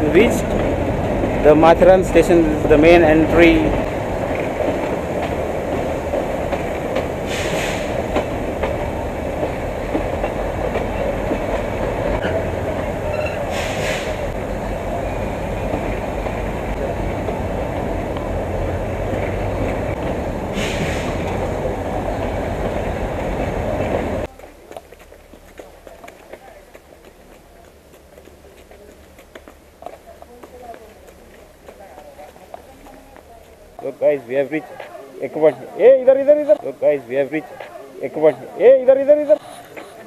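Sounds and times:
train wheels rumbling on rails: 0:00.0 - 0:35.0
short hissing bursts: 0:07.2 - 0:08.0, 0:13.5 - 0:14.3.

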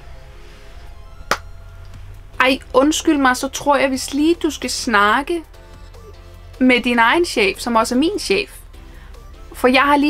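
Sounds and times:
low hum: 0:00.0 - 0:09.9
quiet background music: 0:00.0 - 0:10.0
hand clap: 0:01.3 - 0:01.5.

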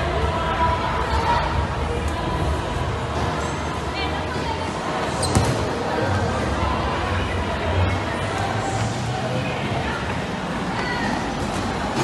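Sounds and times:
crowd noise in large hall: 0:00.0 - 0:12.0.

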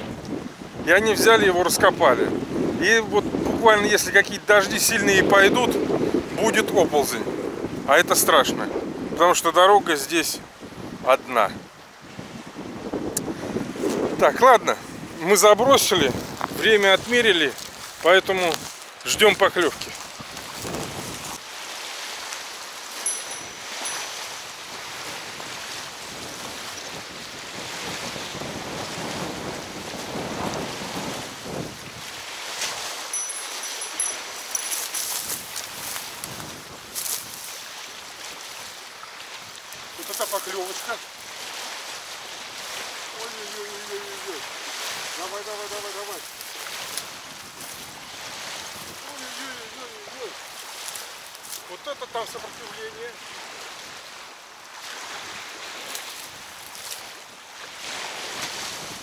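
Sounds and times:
wind buffeting microphone: 0:00.0 - 0:09.4, 0:10.4 - 0:21.4, 0:23.0 - 0:38.7, 0:46.1 - 0:49.2, 0:57.8 - 0:59.0
waves lapping at riverbank: 0:00.0 - 0:59.0
bite-alarm bell tinkling: 0:23.0 - 0:24.6, 0:33.2 - 0:35.2.

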